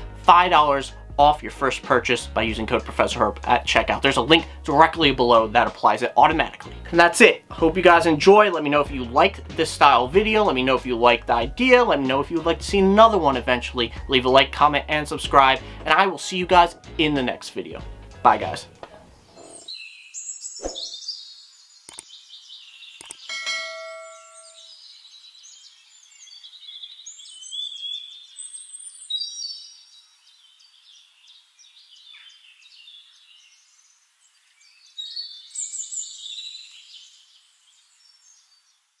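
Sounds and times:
birds chirping and trilling: 18.4 - 39.0
sharp clicks: 21.9 - 22.1, 23.0 - 23.3
bell-like ding: 23.3 - 24.8.

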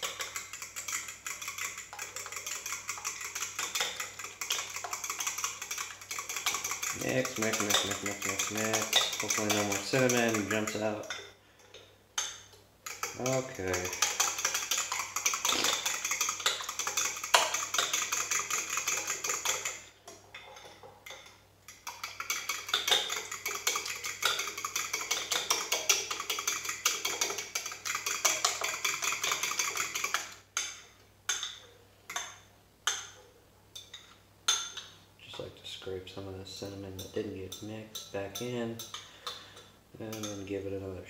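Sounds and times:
fork clicking against bowl: 0.0 - 11.2, 12.2 - 19.8, 21.1 - 33.2.

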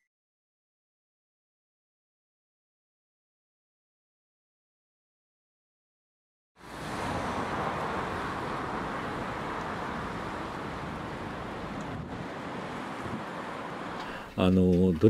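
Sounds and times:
cars passing by: 6.6 - 14.4.

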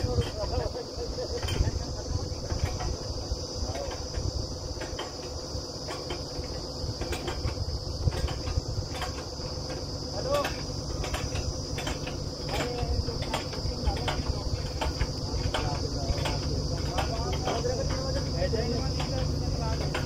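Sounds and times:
drilling rig low rumble: 0.0 - 20.0.

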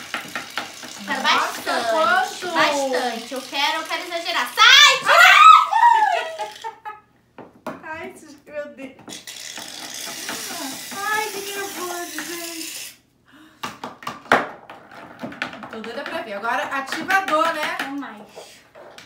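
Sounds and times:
person crying out: 4.7 - 6.6
laughter: 5.7 - 7.1.

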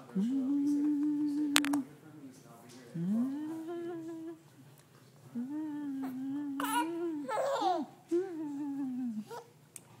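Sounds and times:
person humming playfully: 0.2 - 1.8, 3.0 - 4.4, 5.4 - 9.5.

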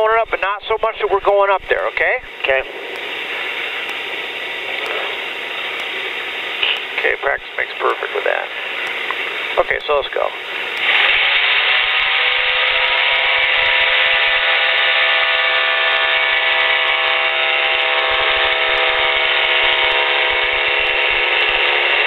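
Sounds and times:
aircraft engine powering up: 0.0 - 22.0.

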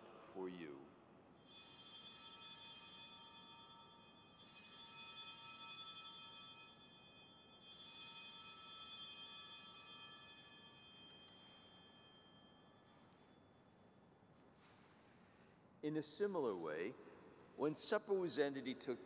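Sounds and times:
altar bells ringing: 1.4 - 15.4.

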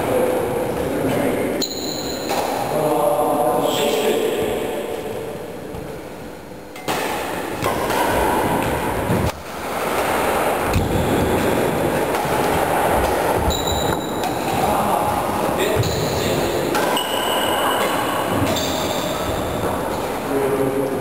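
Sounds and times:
shuttlecock hits: 1.6 - 2.7, 6.8 - 14.8
rumbling hall noise: 2.4 - 21.0
shoe squeaks on floor: 13.5 - 14.1.

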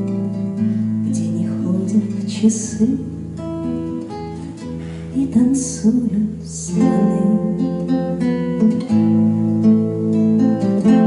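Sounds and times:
nylon-string guitar plucking: 0.0 - 11.0.

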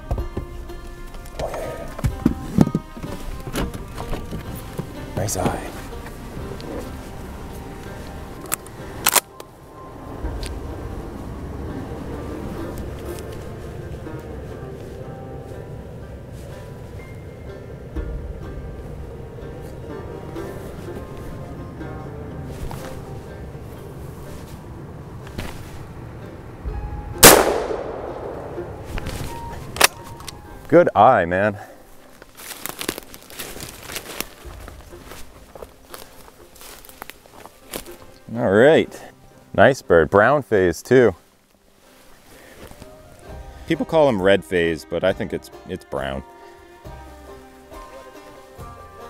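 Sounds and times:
faint background music: 0.0 - 49.0
shotgun shot: 27.2 - 28.9.

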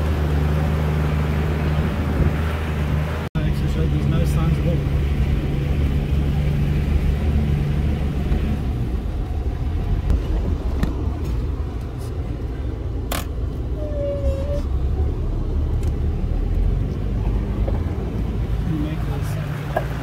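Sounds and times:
engine rumbling at low revs: 0.0 - 20.0
brief squeak: 13.8 - 14.8.

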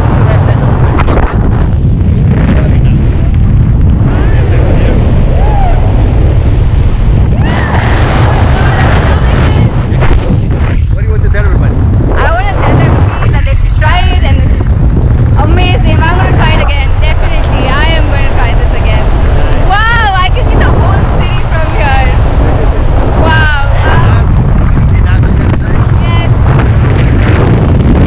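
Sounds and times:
wind buffeting microphone: 0.0 - 28.0
people exclaiming: 4.2 - 6.0
voices talking and calling out: 15.4 - 26.3.

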